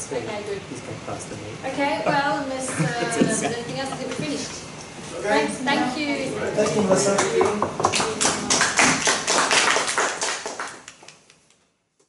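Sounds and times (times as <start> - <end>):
audience applauding: 7.1 - 11.4.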